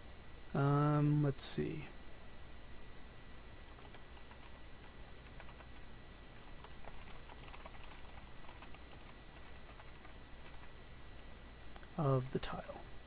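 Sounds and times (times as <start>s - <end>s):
keyboard typing: 3.7s - 5.8s, 6.4s - 10.7s.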